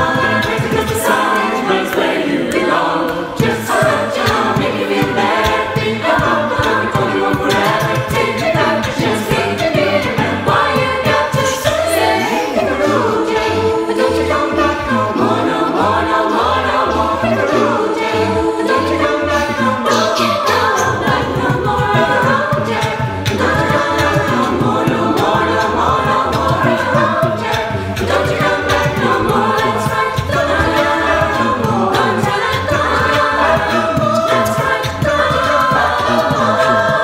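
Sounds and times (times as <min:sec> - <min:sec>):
a cappella choir singing: 0:00.0 - 0:37.0
vocal percussive beat: 0:00.0 - 0:37.0
sung bass line: 0:03.2 - 0:37.0.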